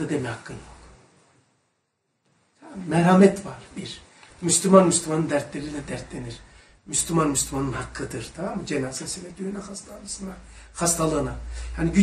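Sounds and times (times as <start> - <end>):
man lecturing: 0.0 - 0.8, 2.6 - 12.0.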